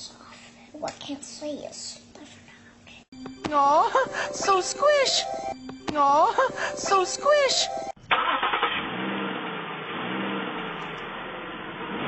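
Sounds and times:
car engine: 3.3s - 12.0s
road noise inside car: 8.1s - 12.0s.

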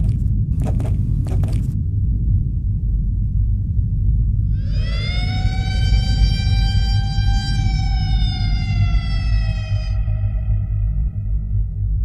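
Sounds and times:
loud low rumble: 0.0s - 12.0s
siren-like wail: 4.5s - 11.7s.

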